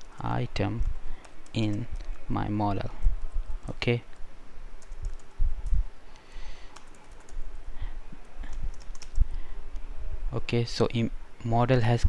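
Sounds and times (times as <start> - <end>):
typing on computer keyboard: 4.8 - 5.8, 6.7 - 7.4, 8.4 - 9.2.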